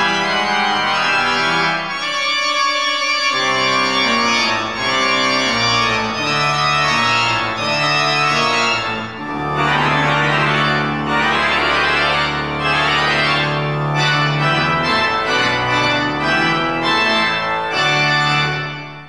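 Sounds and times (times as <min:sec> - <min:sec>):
church organ chords: 0:00.0 - 0:19.0.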